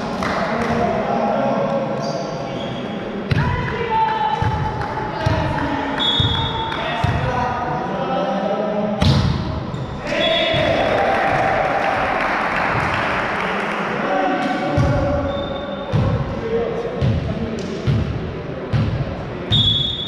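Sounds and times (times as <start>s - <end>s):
volleyball bouncing on gym floor: 3.3s - 7.4s, 17.0s - 19.0s.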